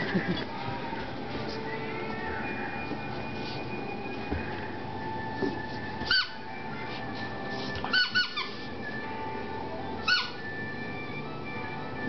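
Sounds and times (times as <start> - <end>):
squeaky dog toy squeaking: 6.1 - 6.5, 7.8 - 8.7, 10.0 - 10.6.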